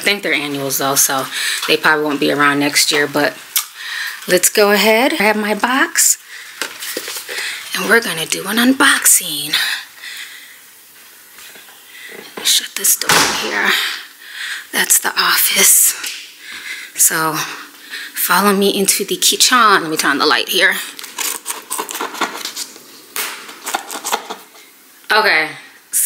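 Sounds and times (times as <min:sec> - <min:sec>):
room noise hiss: 0:00.0 - 0:26.0.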